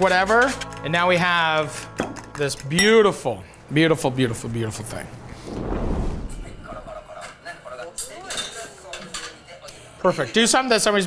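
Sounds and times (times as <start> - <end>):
dishes and utensils clinking: 8.0 - 9.5.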